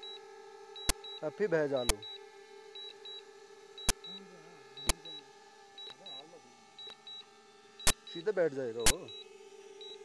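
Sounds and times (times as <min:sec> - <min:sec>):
drone propellers humming: 0:00.0 - 0:10.0
sharp click: 0:00.8 - 0:01.0, 0:03.8 - 0:04.0, 0:07.8 - 0:08.1, 0:08.8 - 0:09.0.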